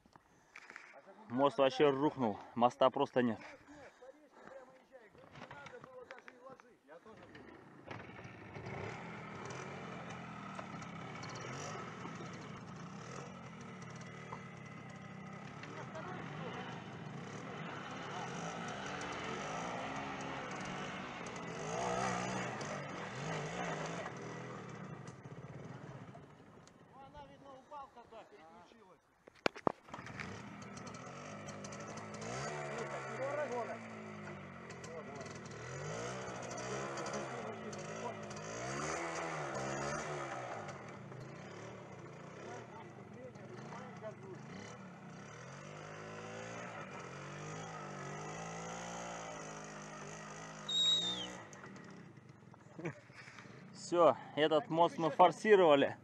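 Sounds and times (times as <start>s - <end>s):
motorcycle engine revving: 7.1s - 27.0s, 29.6s - 54.2s.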